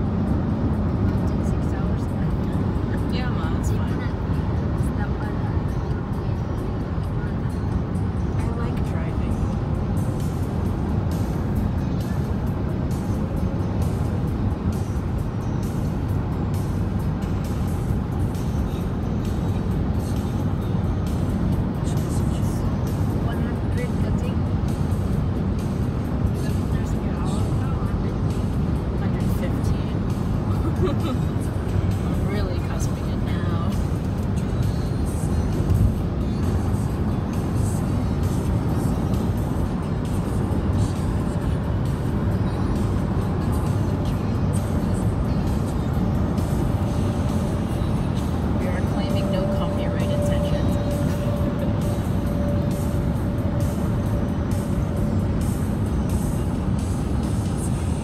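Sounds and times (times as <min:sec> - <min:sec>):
car road and engine rumble: 0:00.0 - 0:58.0
music playing: 0:00.0 - 0:58.0.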